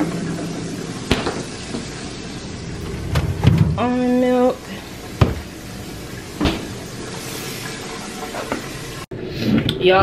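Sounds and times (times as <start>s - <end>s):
refrigerator door opening: 2.8s - 3.9s.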